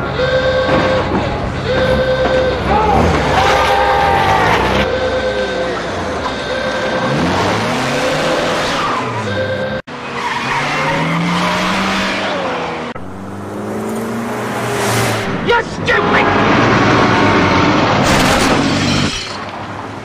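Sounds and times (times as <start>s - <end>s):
van engine revving: 0.0s - 15.4s.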